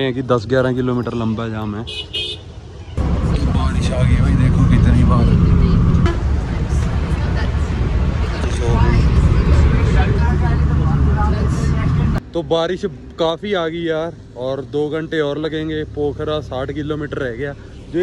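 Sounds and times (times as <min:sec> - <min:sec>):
bus engine and road rumble: 0:00.0 - 0:18.0
passengers talking: 0:03.0 - 0:12.2.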